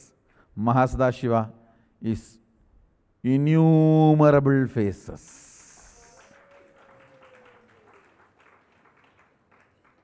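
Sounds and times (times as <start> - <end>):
faint audience clapping: 5.1 - 10.0.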